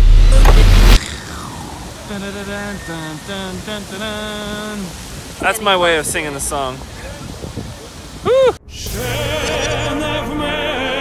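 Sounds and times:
man singing: 2.0 - 5.0, 8.8 - 11.0.

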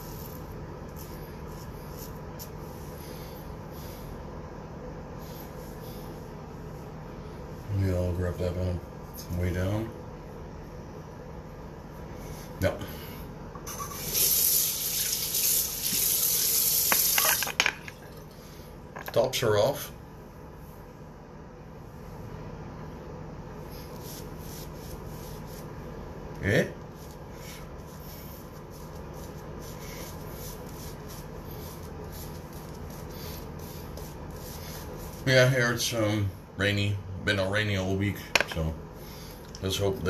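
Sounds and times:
tap water running into sink: 14.0 - 17.5.

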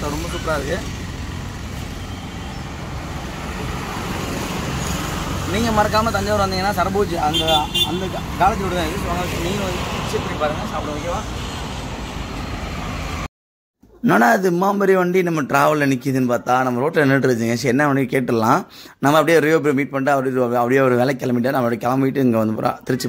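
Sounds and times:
road traffic rumble: 0.0 - 13.3.

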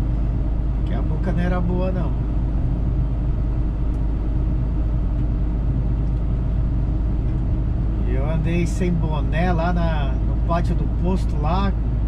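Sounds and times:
road noise: 0.0 - 12.0
truck engine rumble: 0.0 - 12.0.

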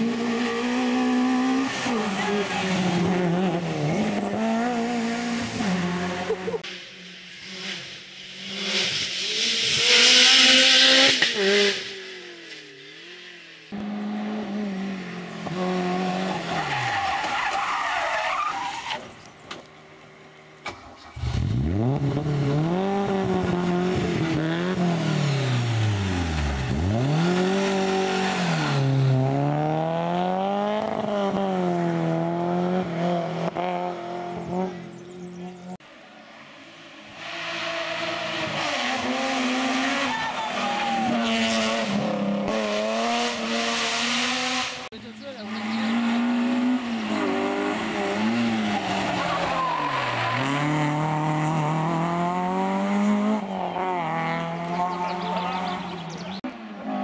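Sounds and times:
rally car engine revving: 0.0 - 19.6, 20.7 - 35.9, 36.9 - 57.0.

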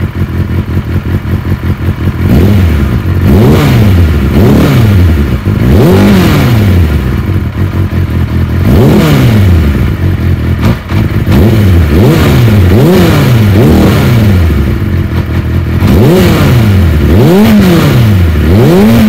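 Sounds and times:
motorcycle engine fast idle: 0.0 - 3.2
motorcycle engine revving: 0.0 - 19.0.

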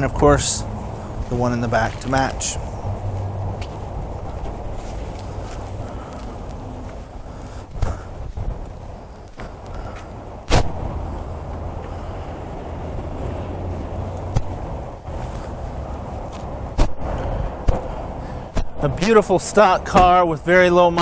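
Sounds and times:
low background rumble: 0.0 - 20.5.

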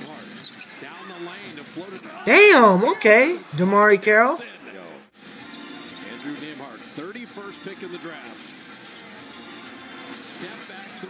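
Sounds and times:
arena crowd noise: 2.2 - 4.8
commentator speaking: 2.3 - 4.4.

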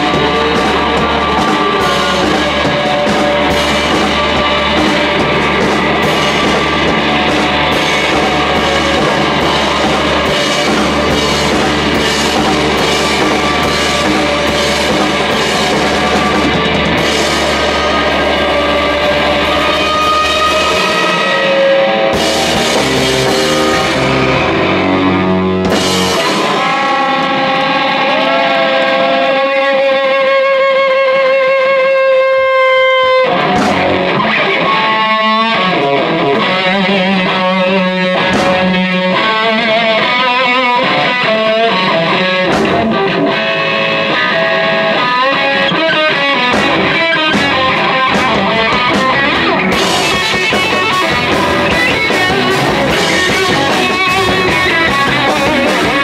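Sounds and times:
drum and cymbal hits: 0.0 - 27.8, 33.4 - 34.2, 38.2 - 39.0, 42.4 - 43.3, 46.4 - 56.0
bass guitar: 0.0 - 56.0
distorted electric guitar: 0.0 - 56.0.

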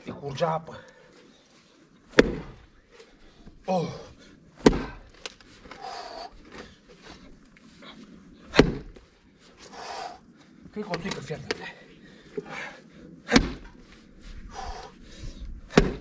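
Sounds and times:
axe striking tree stump: 2.1 - 2.6, 4.6 - 5.4, 8.5 - 9.0, 13.3 - 13.7, 15.7 - 16.0.

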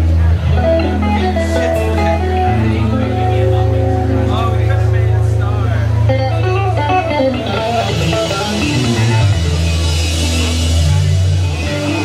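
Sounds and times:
electric guitar lines: 0.0 - 12.0
synth bass: 0.0 - 12.0.

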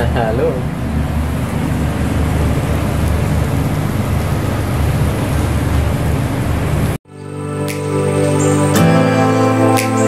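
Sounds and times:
loud unsteady low rumble: 0.0 - 7.0.

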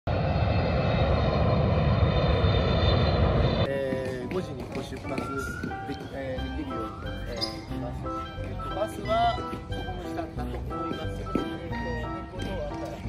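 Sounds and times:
jet engine roar and whine: 0.1 - 3.7
music: 3.7 - 13.0.

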